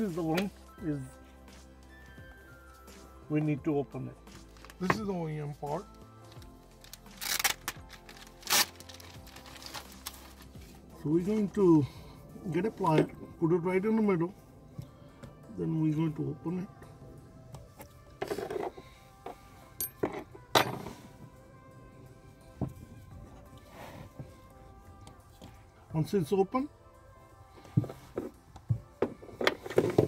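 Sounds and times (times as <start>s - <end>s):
faint background music: 0.0s - 30.0s
plastic bag crinkling: 6.8s - 10.6s
handling rustle: 6.8s - 11.5s.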